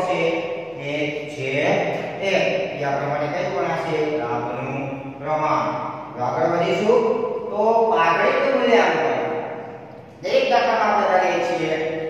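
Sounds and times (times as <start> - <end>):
man speaking slowly: 0.0 - 12.0.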